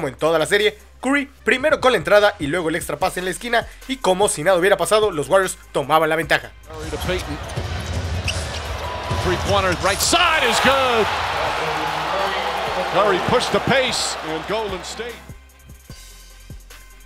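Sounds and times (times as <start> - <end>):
arena crowd noise: 6.7 - 15.4
sneaker squeaks: 6.8 - 9.0.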